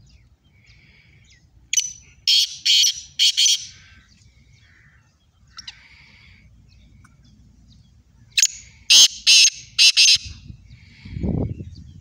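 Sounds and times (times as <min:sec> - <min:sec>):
francolin calling: 0:00.1 - 0:07.3, 0:08.2 - 0:11.2.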